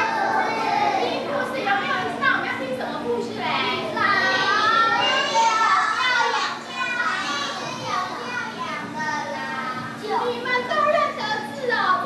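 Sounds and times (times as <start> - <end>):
children chattering: 0.0 - 12.0
steady low hum: 0.0 - 12.0.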